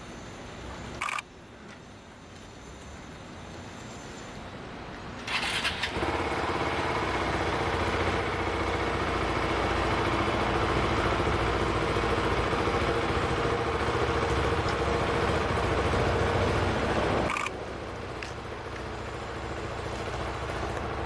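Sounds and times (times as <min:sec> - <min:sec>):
motorcycle engine starting and idling: 0:05.2 - 0:21.0.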